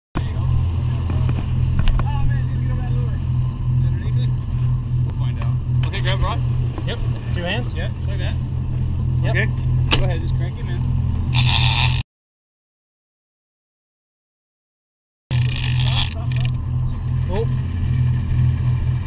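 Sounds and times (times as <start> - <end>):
boat engine droning: 0.2 - 12.0, 15.3 - 19.0
boat through choppy water: 0.2 - 12.0, 15.3 - 19.0.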